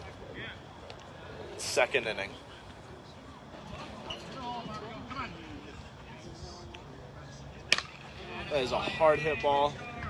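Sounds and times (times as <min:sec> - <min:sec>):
outdoor background hiss: 0:00.0 - 0:10.0
people talking: 0:00.0 - 0:10.0.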